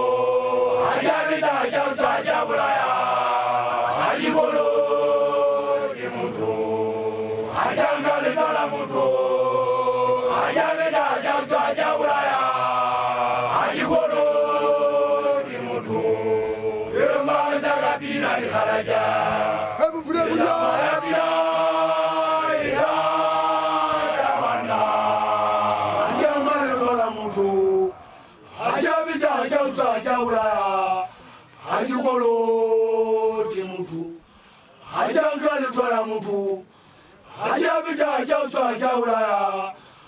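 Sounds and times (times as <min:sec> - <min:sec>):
male voices chanting: 0:00.0 - 0:39.9.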